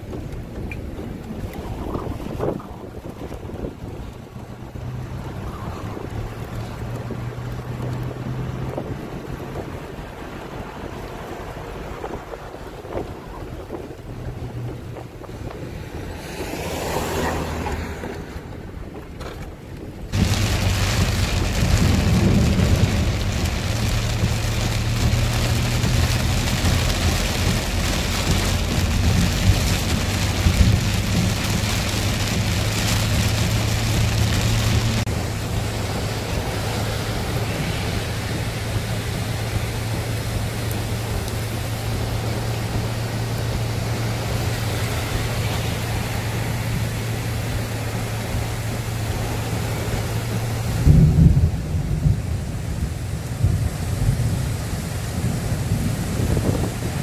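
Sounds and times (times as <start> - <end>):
low rumbling surges: 0.0 - 57.0
vehicle driving drone: 0.0 - 57.0
heavy rain hissing: 20.2 - 57.0.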